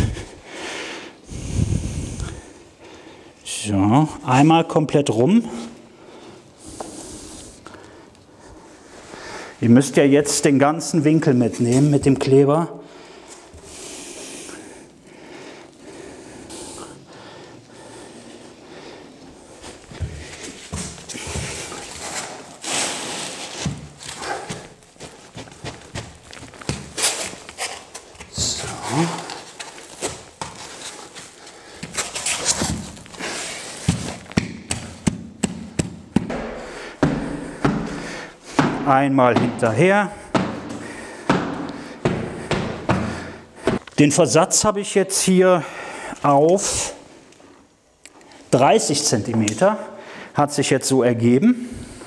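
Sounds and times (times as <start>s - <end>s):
footsteps on boards: 19.9s - 22.2s, 23.6s - 43.9s.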